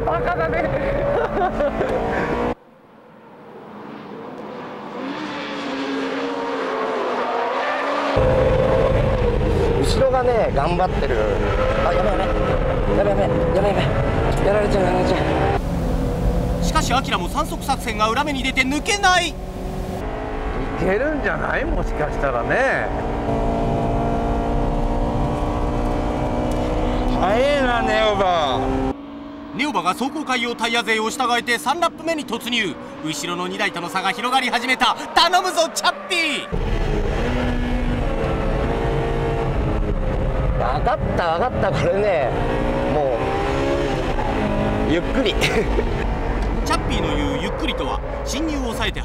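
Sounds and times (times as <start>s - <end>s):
cabin and road drone: 0.0s - 49.0s
car engine running hard: 8.0s - 34.4s, 36.5s - 49.0s
race car engine running hard: 13.3s - 27.6s.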